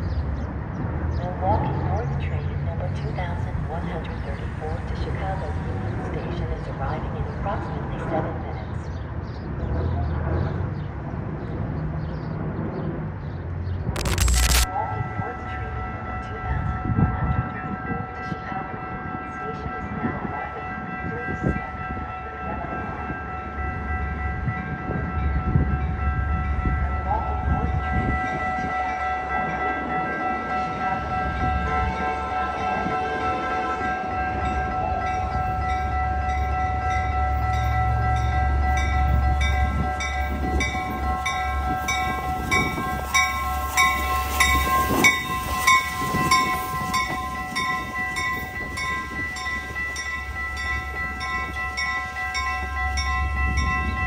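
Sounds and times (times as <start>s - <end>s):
crossing warning bells ringing: 0.0s - 11.0s, 14.0s - 54.0s
low rumble of train: 0.0s - 54.0s.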